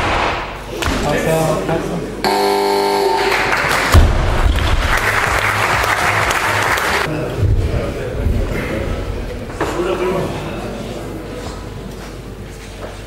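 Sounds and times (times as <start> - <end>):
short electronic tone: 2.3 - 3.3
applause: 3.2 - 7.1.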